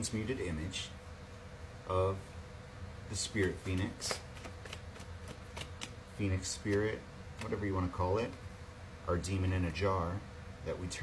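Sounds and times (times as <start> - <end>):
cards being shuffled: 3.3 - 8.4.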